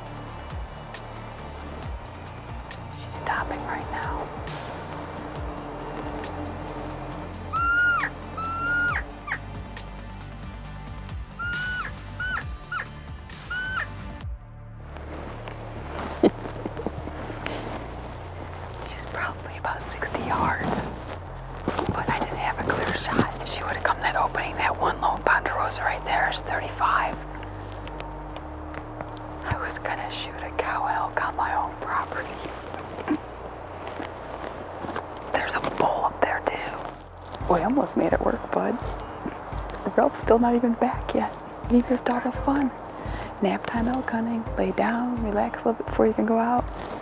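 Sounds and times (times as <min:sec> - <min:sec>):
background music: 0:00.0 - 0:47.0
person whispering: 0:03.1 - 0:04.3, 0:18.8 - 0:20.9, 0:21.9 - 0:27.2, 0:29.4 - 0:33.2
elk mewing calls: 0:07.4 - 0:09.5, 0:11.3 - 0:14.0.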